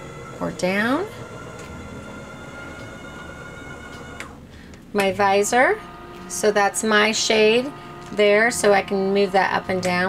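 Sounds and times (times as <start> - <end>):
electric motor whining: 0.0 - 10.0.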